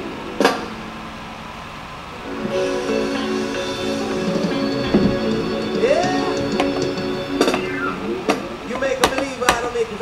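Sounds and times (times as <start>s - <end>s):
strummed ukulele chord ringing: 2.3s - 7.7s
wavering voice-like tone: 7.5s - 8.7s.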